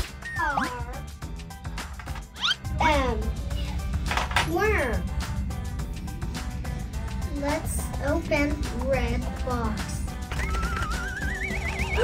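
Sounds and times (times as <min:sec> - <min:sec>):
background music: 0:00.0 - 0:12.0
warbling whistle tone rising: 0:10.3 - 0:12.0.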